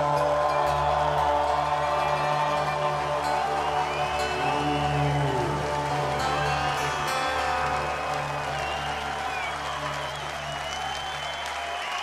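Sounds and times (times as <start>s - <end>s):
crowd applauding and cheering: 0.0s - 12.0s.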